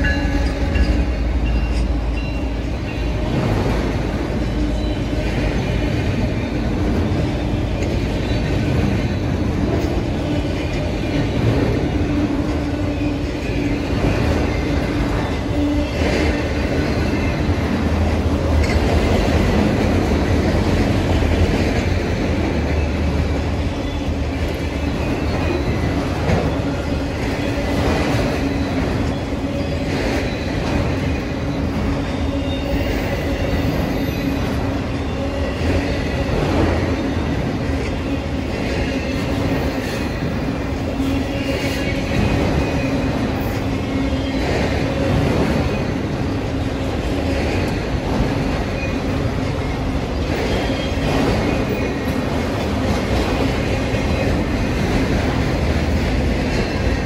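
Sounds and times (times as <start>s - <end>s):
freight train wheels rumbling: 0.0s - 57.0s.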